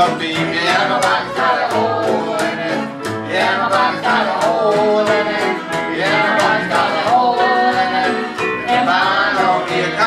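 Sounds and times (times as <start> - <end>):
strummed and picked guitars: 0.0 - 10.0
upright bass: 0.0 - 10.0.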